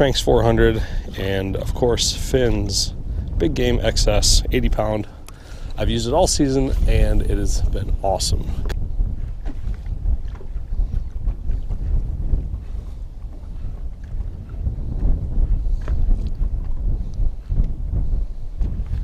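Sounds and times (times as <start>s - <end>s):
waves slapping boat hull: 0.0s - 19.0s
wind buffeting microphone: 0.0s - 19.0s.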